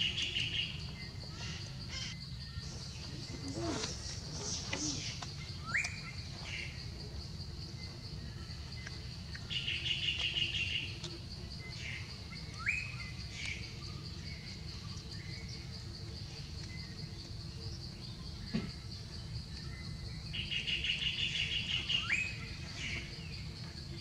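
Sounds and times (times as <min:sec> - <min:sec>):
birds whistling and trilling: 0:00.0 - 0:06.9, 0:08.3 - 0:15.7, 0:16.6 - 0:23.6
pulsing insect drone: 0:00.0 - 0:24.0.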